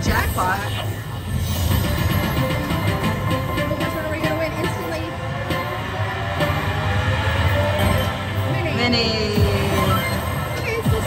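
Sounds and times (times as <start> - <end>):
slot machine music and chimes: 0.1 - 11.0.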